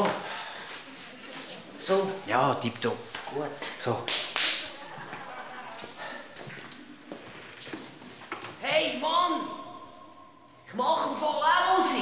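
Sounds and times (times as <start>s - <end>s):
footsteps on hard floor: 4.9s - 8.2s.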